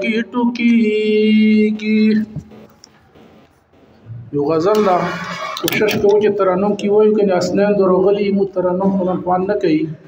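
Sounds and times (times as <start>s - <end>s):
man chanting into a microphone: 0.0s - 2.4s.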